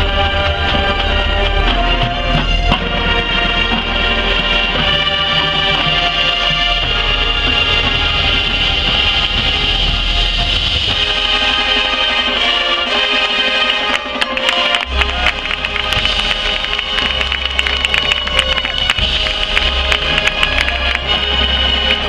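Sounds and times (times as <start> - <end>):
marching band chords: 0.0 - 22.0
sharp percussion hits: 5.0 - 22.0.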